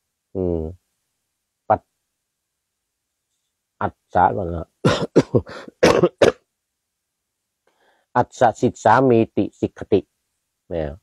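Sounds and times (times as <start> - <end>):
man coughing: 4.8 - 6.4.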